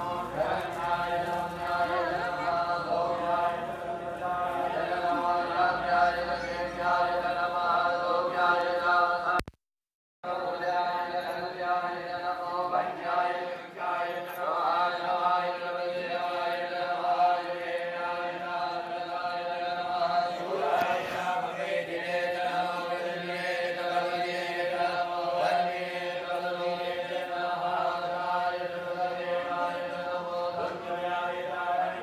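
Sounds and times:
men chanting in unison: 0.0s - 9.3s, 10.3s - 32.0s.

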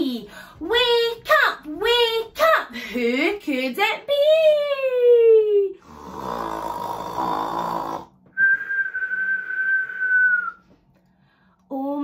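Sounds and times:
person imitating rasping snore: 5.8s - 8.2s
long steady whistle: 8.4s - 10.7s.

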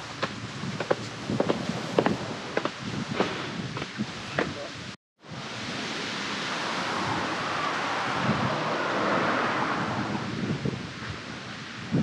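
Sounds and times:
wind gusting through trees: 0.0s - 12.0s.

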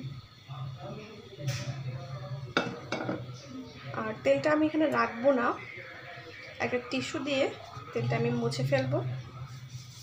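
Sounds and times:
pan knocking: 2.6s - 3.3s
pan scraping on stove: 7.4s - 10.0s.

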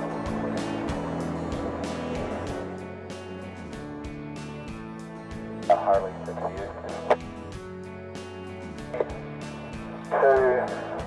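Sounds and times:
background music with steady beat: 0.0s - 11.0s
man speaking: 5.7s - 7.2s, 10.1s - 10.8s.

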